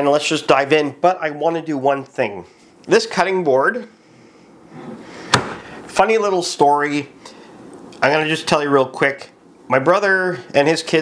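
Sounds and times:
wooden board knock: 5.3 - 5.6.

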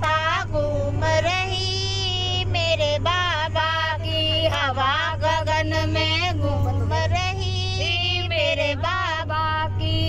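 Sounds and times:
woman singing devotional song: 0.0 - 10.0.

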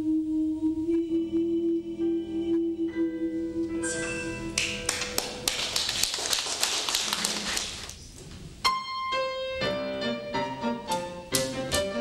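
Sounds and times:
small audience applauding: 4.6 - 8.0.

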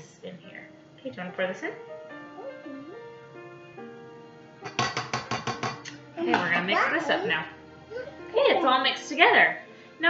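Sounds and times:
soft background music: 0.0 - 10.0
cup tapping on metal bowl: 4.6 - 6.6.

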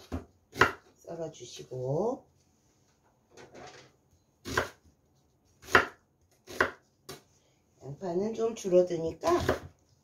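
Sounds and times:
knife chopping onion on wooden board: 0.0 - 1.0, 4.4 - 7.3, 9.0 - 9.8.

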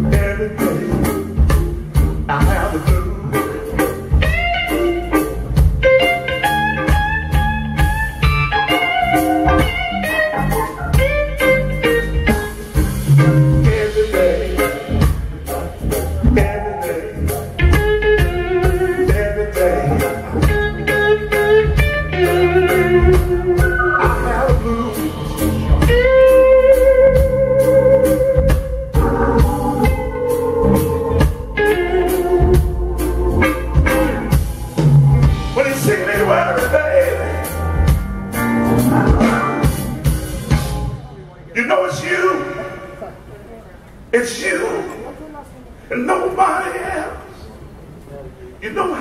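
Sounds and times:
electric guitar bent notes: 0.0 - 41.1
drums: 0.0 - 42.1
blues band playing: 0.0 - 49.0
electric guitar note bend: 17.6 - 35.5.

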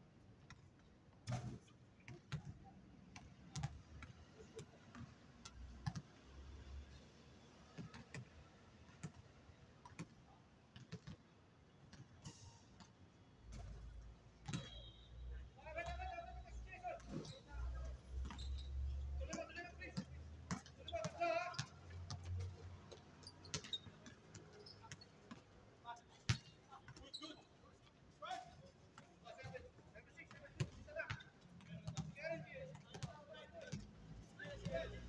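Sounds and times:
basketball bouncing on hard court: 3.6 - 3.8, 22.9 - 24.2.

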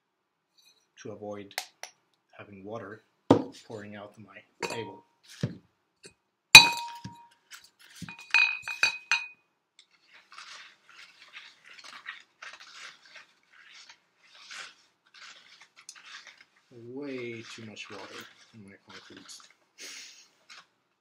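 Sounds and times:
stick stirring wet concrete: 3.3 - 5.6, 6.6 - 9.2, 9.8 - 21.0
flower pots clinking: 4.6 - 5.5, 6.6 - 7.2, 8.0 - 9.3.

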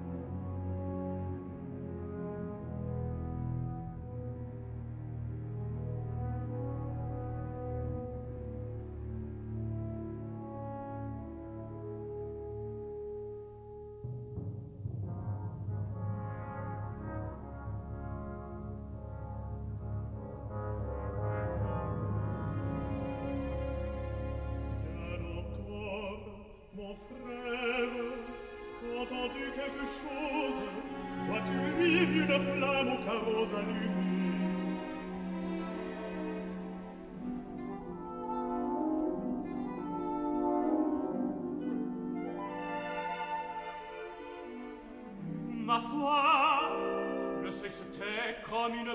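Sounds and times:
french horn solo: 0.0 - 26.6, 27.5 - 48.6
orchestra: 0.0 - 48.9.

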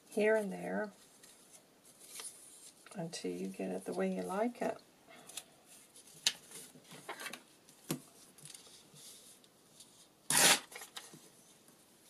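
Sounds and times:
paper rustling and shuffling: 0.4 - 4.2, 5.2 - 10.1, 10.7 - 11.6.

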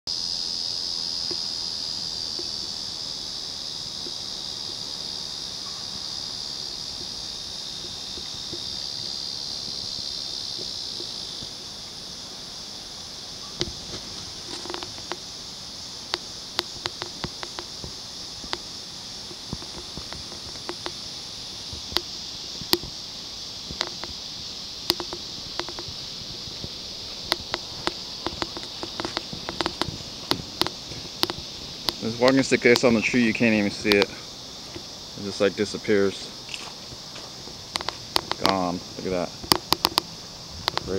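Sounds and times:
insects buzzing: 0.1 - 40.9
sharp clicks and snaps: 14.4 - 15.2, 16.1 - 17.9, 19.3 - 21.0, 21.8 - 23.0, 23.7 - 24.2, 24.8 - 26.0, 27.2 - 32.9, 33.9 - 34.1, 37.7 - 38.7, 39.4 - 40.9.

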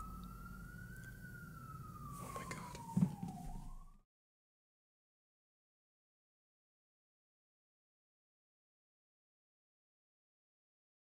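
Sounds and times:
faint siren wailing: 0.0 - 4.1
thump: 2.8 - 3.7.

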